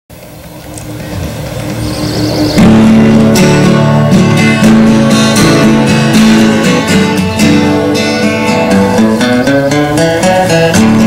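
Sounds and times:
steady engine-like hum: 0:00.1 - 0:06.9.

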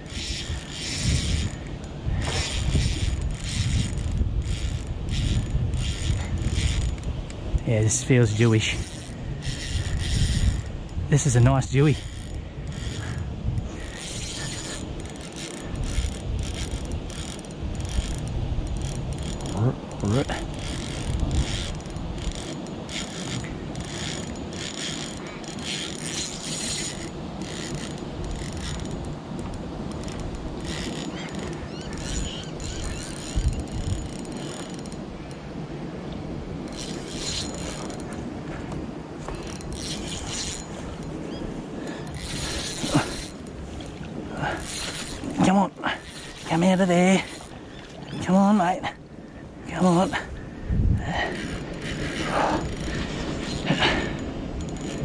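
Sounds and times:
fishing reel clicking and whirring: 0:00.0 - 0:35.4, 0:36.6 - 0:38.2, 0:39.2 - 0:48.6, 0:51.0 - 0:55.0.

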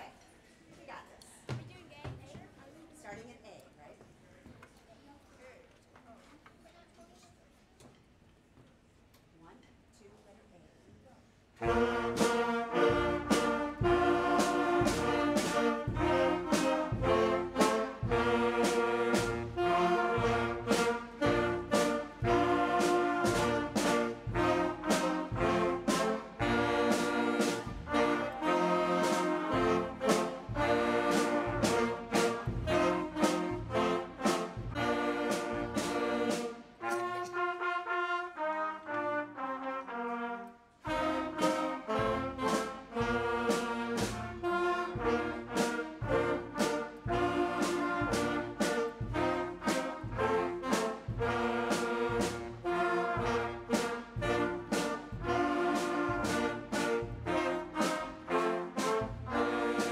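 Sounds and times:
drum hits: 0:11.6 - 0:36.5
concert band playing: 0:11.6 - 0:37.2, 0:40.9 - 0:59.9.

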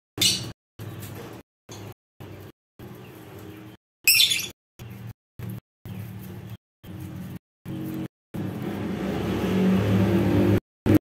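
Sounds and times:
low motor hum: 0:04.8 - 0:11.0.

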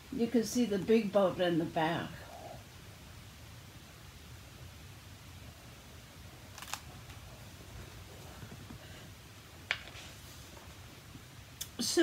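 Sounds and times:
faint low room hum: 0:00.0 - 0:12.0
book rustling: 0:06.5 - 0:08.9.

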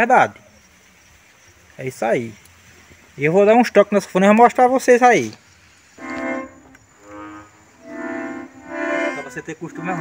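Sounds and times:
accordion chords: 0:06.0 - 0:10.0.

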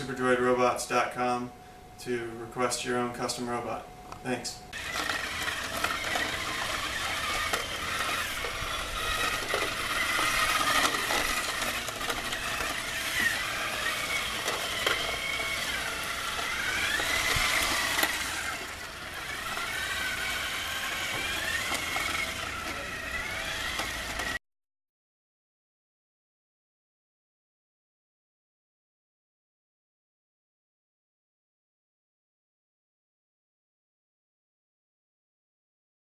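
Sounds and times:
robot motors whining: 0:04.7 - 0:24.4.

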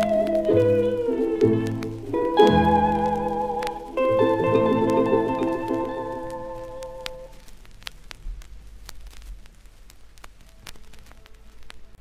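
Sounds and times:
vinyl surface crackle and pops: 0:00.0 - 0:12.0.

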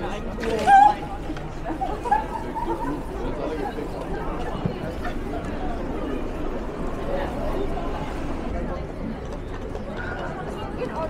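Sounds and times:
busy street hum: 0:00.0 - 0:11.0
passers-by chattering: 0:00.0 - 0:11.0.

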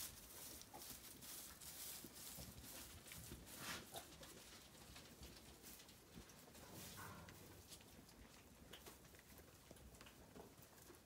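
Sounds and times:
rustling of straw: 0:00.0 - 0:08.0
soft hoof steps in straw: 0:00.0 - 0:11.0.

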